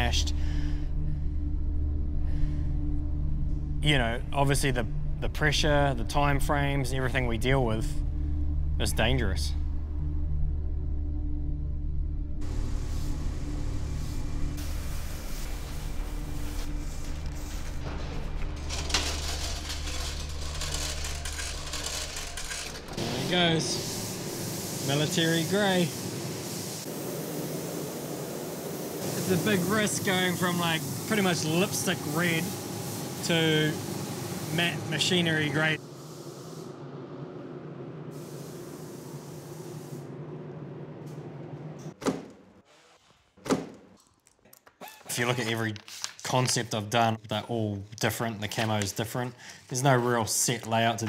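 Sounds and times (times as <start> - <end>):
low mechanical hum: 0.0 - 42.6
spray gun hissing: 12.4 - 17.9, 22.9 - 36.8, 38.1 - 40.2.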